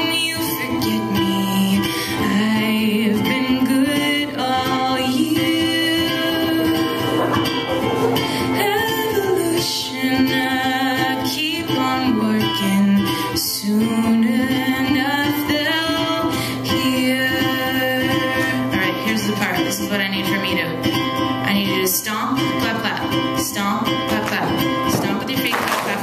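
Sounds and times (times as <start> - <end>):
strummed ukulele: 0.0 - 26.0
woman singing: 0.0 - 26.0.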